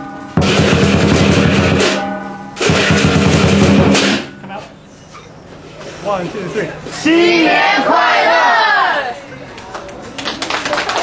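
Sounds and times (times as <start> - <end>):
group of people shouting: 7.0 - 9.2.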